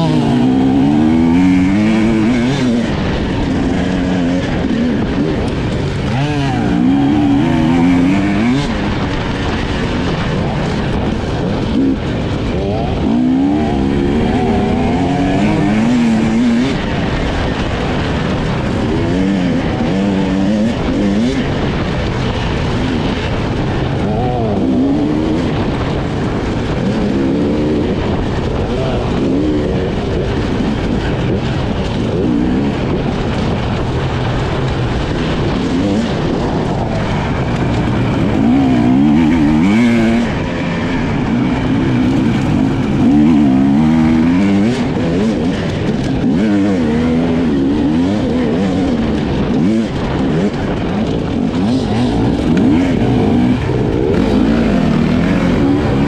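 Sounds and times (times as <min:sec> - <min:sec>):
motorcycle engine revving: 0:00.0 - 0:56.0
wind rush: 0:00.0 - 0:56.0.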